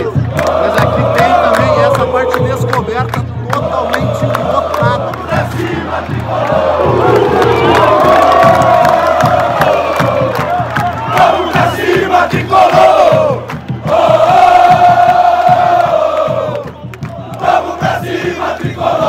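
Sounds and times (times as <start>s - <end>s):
crowd chanting: 0.0s - 2.7s, 3.4s - 19.0s
hand-clapping: 0.0s - 18.7s
crowd singing long ohhh: 0.0s - 19.0s
steady low beats: 0.0s - 19.0s.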